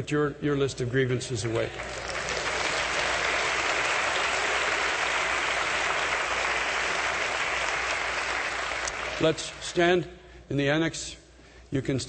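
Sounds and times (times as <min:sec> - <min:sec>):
congregation applauding: 0:01.6 - 0:09.8.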